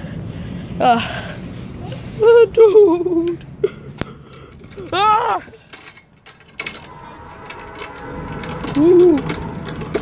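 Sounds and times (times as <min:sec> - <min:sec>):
light irregular clicking and rattling: 0:03.2 - 0:10.0.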